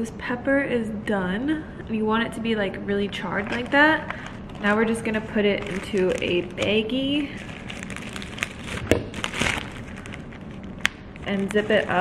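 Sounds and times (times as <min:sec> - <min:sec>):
plastic bag crinkling: 0:03.1 - 0:12.0.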